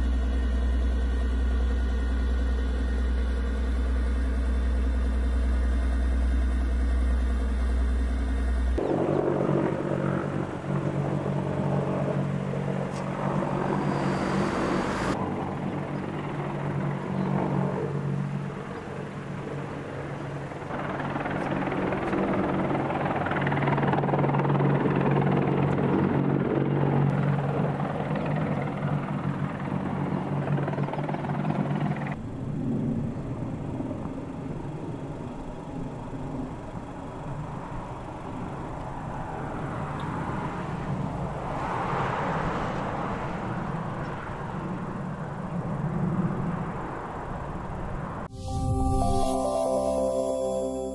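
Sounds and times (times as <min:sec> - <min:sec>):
helicopter engine noise: 0:00.0 - 0:49.1
helicopter rotor drone: 0:00.0 - 0:49.2.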